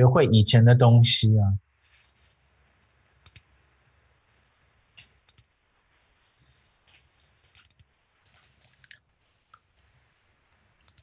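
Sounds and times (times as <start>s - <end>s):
computer mouse clicks: 3.2s - 3.5s, 5.0s - 5.6s, 6.8s - 9.7s.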